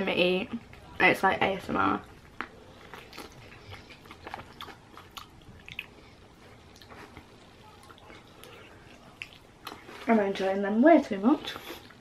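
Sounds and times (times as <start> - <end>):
person chewing: 2.0 - 10.1.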